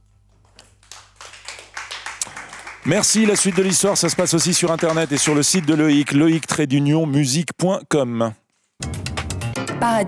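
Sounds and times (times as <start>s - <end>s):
small group applauding: 0.4s - 6.6s.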